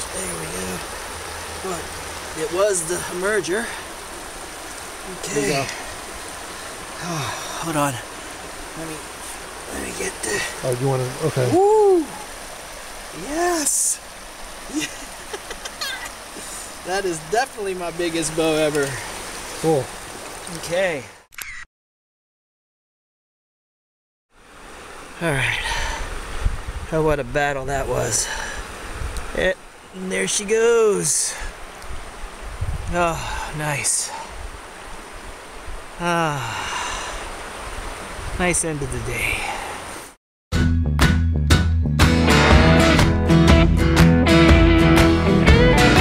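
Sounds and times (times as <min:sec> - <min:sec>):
stream flowing: 0:00.0 - 0:21.3, 0:24.3 - 0:40.2
wind rumble on microphone: 0:26.0 - 0:27.4, 0:28.7 - 0:29.4, 0:31.8 - 0:33.4.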